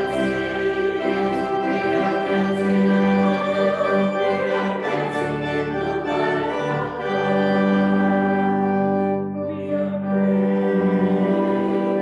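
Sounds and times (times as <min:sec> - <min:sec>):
instrumental accompaniment: 0:00.0 - 0:12.0.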